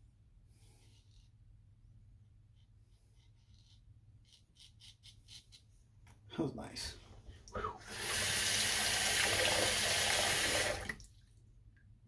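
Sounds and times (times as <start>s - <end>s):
water running from sink tap: 7.8s - 11.0s.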